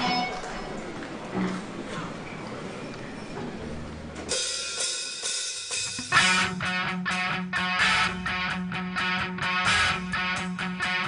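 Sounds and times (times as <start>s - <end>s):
drum cymbals struck: 4.3s - 6.7s.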